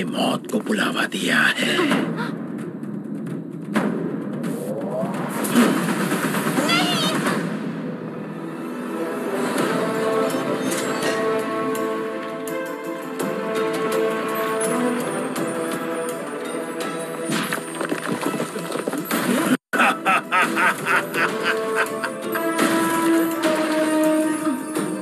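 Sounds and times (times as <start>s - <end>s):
background music: 0.0s - 25.0s
cartoon villain gloating laugh: 19.8s - 22.6s.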